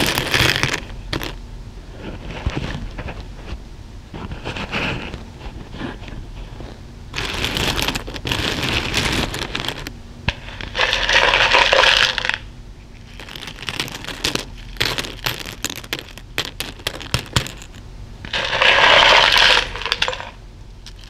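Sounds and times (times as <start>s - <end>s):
plastic buttons and beads rattling: 7.2s - 9.9s, 13.1s - 17.8s, 18.4s - 21.0s.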